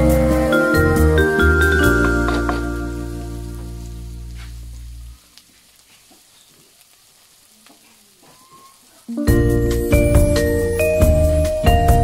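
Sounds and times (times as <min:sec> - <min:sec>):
background music: 0:00.0 - 0:04.3, 0:09.1 - 0:12.0
onions frying in oil: 0:00.0 - 0:12.0.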